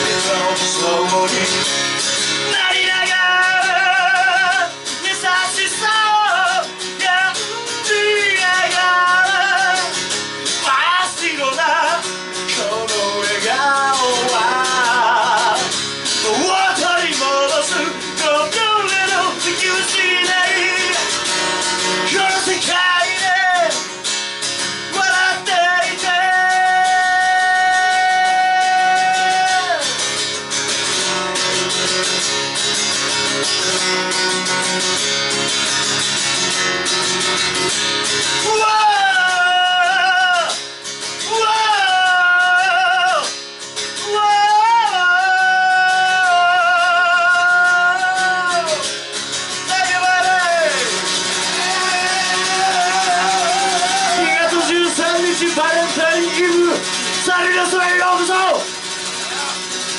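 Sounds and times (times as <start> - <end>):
man singing: 0.0 - 30.4, 37.6 - 59.9
acoustic guitar strumming: 0.0 - 59.9.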